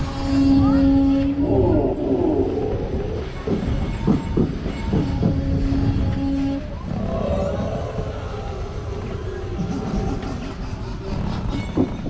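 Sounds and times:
funfair ride low rumble: 0:00.0 - 0:12.0
rattling knocks: 0:03.1 - 0:06.2.

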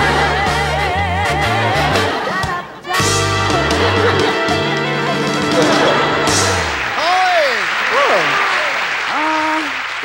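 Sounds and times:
audience applauding: 0:04.7 - 0:10.0.

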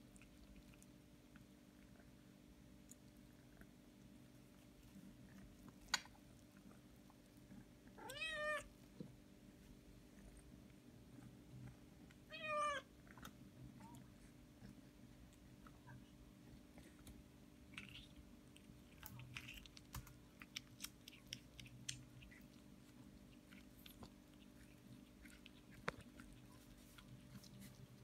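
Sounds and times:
cat chewing corn: 0:00.0 - 0:12.3, 0:12.9 - 0:28.0
cat meowing: 0:08.0 - 0:08.7, 0:12.3 - 0:12.9.

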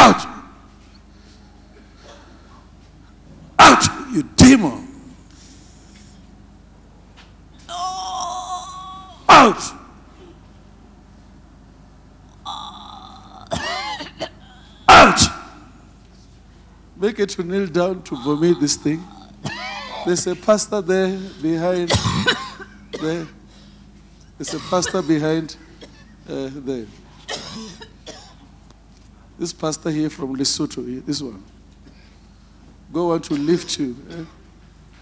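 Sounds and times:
loud shout: 0:00.0 - 0:00.4, 0:03.6 - 0:04.2, 0:07.7 - 0:09.9, 0:14.9 - 0:15.6
person coughing: 0:01.8 - 0:02.4, 0:09.3 - 0:10.4, 0:12.9 - 0:15.6, 0:18.2 - 0:20.4, 0:21.8 - 0:23.4, 0:24.4 - 0:26.2, 0:27.2 - 0:28.5, 0:33.2 - 0:34.4
woman retching and gagging: 0:12.4 - 0:14.7.

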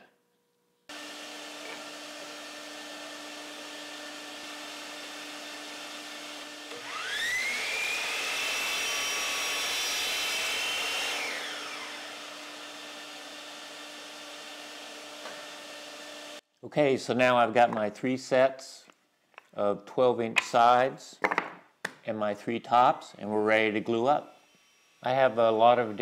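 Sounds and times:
miter saw whining: 0:00.9 - 0:16.4.

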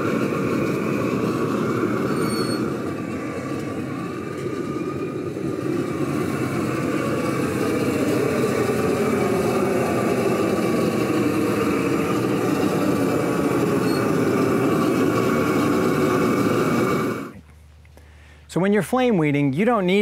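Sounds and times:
propane torch flame rushing: 0:00.0 - 0:17.4.

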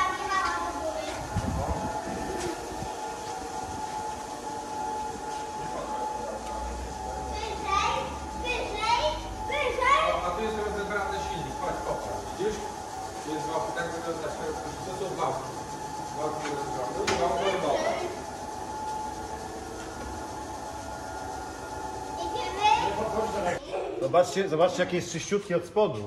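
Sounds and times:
hydraulic pump whining: 0:00.0 - 0:23.6.

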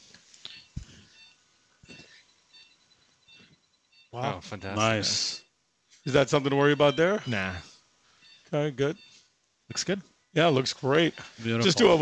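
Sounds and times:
faint short electronic beeps: 0:00.5 - 0:04.2.

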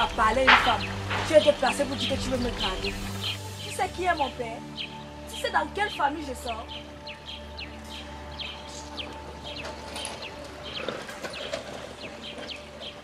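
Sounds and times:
low music drone: 0:00.0 - 0:13.0
small birds chirping: 0:00.0 - 0:13.0.

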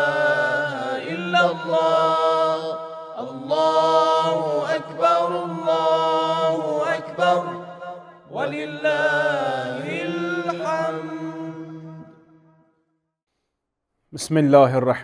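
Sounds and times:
melodic vocal chant: 0:00.0 - 0:12.4.

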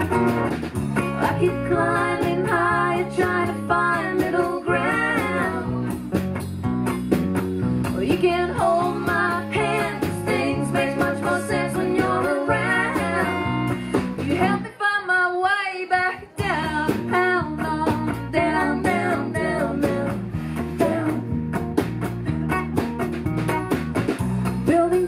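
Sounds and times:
drum kit: 0:00.0 - 0:14.6, 0:16.2 - 0:25.0
electric bass: 0:00.0 - 0:14.6, 0:16.4 - 0:25.0
acoustic guitar: 0:00.0 - 0:14.8, 0:16.1 - 0:25.0.

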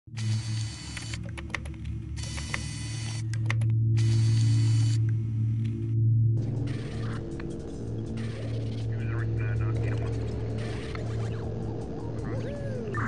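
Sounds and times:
low electronic hum: 0:00.1 - 0:13.0
scattered clicks: 0:00.3 - 0:05.8
bursts of static: 0:06.4 - 0:11.9.

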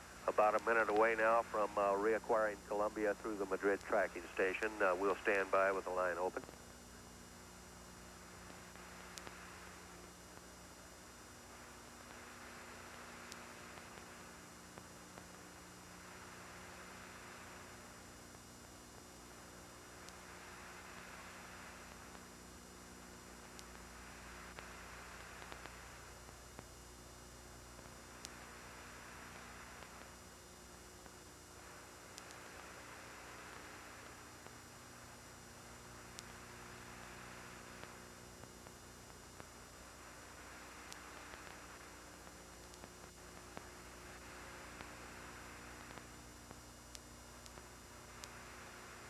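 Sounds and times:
radio static hiss: 0:00.0 - 0:49.0
steady electrical hum: 0:00.0 - 0:49.0
faint clicks: 0:08.5 - 0:10.6, 0:11.8 - 0:17.2, 0:23.4 - 0:26.7, 0:27.7 - 0:30.2, 0:31.0 - 0:35.1, 0:35.7 - 0:49.0.

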